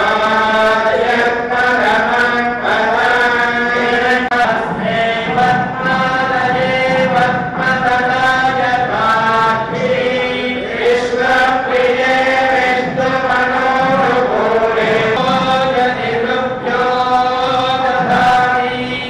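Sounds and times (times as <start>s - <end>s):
mantra chanting: 0.0s - 19.0s.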